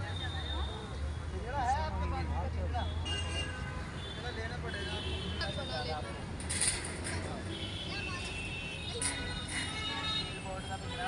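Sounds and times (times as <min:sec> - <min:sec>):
low traffic hum: 0:00.0 - 0:11.0.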